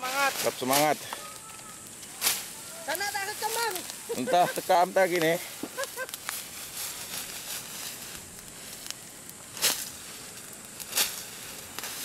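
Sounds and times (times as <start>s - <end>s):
fire crackling: 0.0s - 12.0s
low hiss: 0.0s - 12.0s
rustling strikes: 1.6s - 2.6s, 9.5s - 12.0s.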